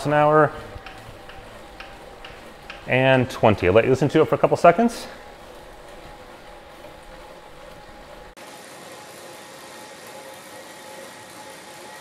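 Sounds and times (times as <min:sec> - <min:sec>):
bicycle drivetrain whir: 0:00.0 - 0:12.0.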